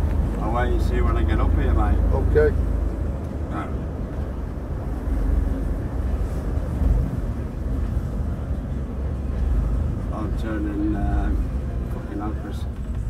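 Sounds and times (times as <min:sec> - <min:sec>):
engine and road rumble: 0:00.0 - 0:13.0.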